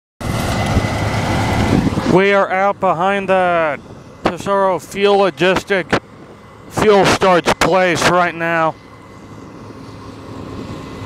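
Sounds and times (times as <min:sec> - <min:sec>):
combine harvester rumbling: 0:00.2 - 0:11.0
faint high machine whine: 0:02.6 - 0:11.0.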